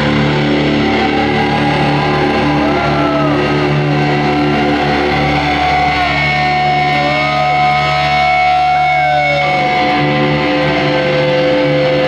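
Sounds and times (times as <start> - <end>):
distorted electric guitars and bass: 0.0 - 12.0.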